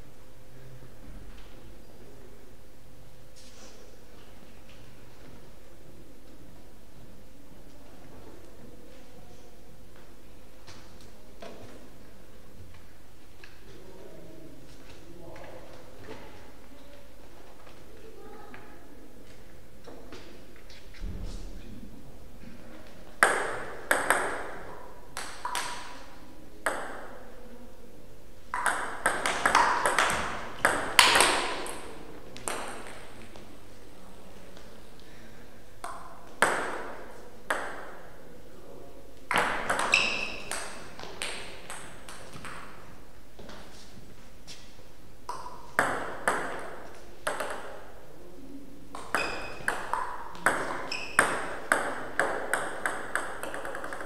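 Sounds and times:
table tennis ball clicks: 0:28.5 - 0:31.8.

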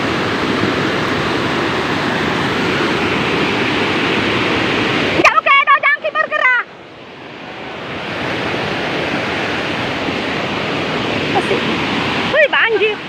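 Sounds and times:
floodwater rushing: 0:00.0 - 0:13.0.

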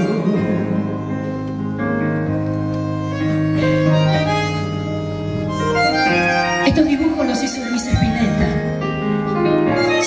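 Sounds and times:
bandoneon slow melody: 0:00.0 - 0:10.0
sustained keyboard chords: 0:00.0 - 0:10.0.

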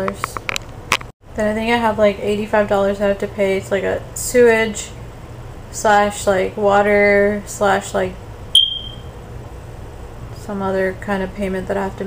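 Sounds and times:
high-pitched chirp: 0:08.6 - 0:09.1.

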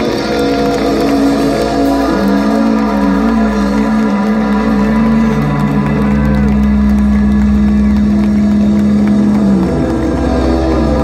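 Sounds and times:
deep bass note: 0:00.0 - 0:11.0
low synthesizer drone: 0:00.0 - 0:11.0.

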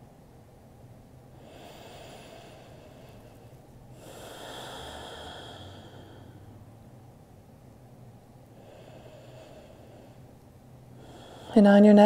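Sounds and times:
low room hum: 0:00.0 - 0:12.0
slow breath through nose: 0:01.4 - 0:06.6, 0:08.6 - 0:10.3, 0:10.9 - 0:11.6.

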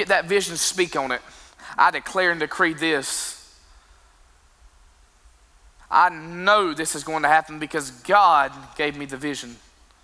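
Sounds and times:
man speaking over amplification: 0:00.0 - 0:03.6, 0:05.8 - 0:09.8.

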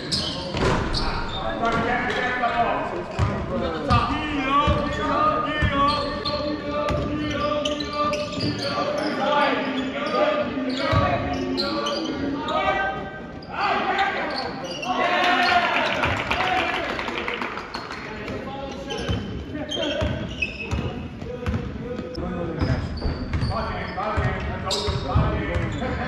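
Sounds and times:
echoing indistinct voices: 0:00.0 - 0:26.0.

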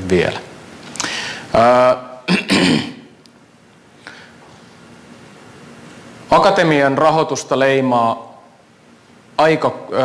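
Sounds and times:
man clearing throat: 0:02.3 - 0:03.1.

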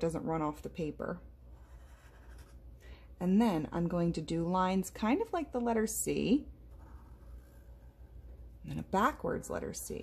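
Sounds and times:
marker scratching on paper: 0:01.4 - 0:02.6, 0:06.7 - 0:08.2.

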